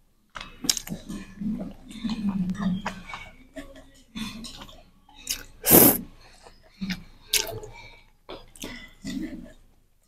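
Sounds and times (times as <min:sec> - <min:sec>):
mouth noises: 0:05.3 - 0:06.0
slurping food: 0:05.3 - 0:06.0.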